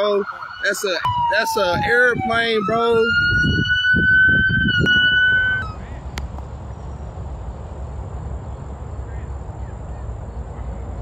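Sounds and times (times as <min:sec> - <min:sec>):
emergency vehicle siren: 0:00.0 - 0:05.8.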